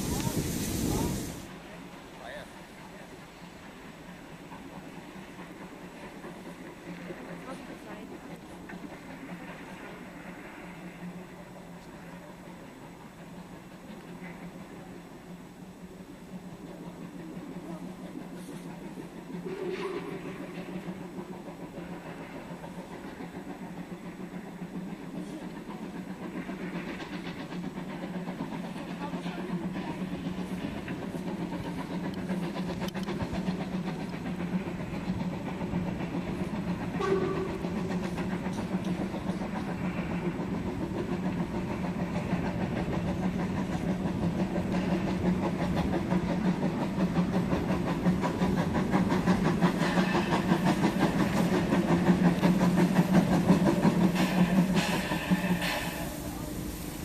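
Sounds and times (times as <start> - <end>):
steam locomotive working: 0.0 - 57.0.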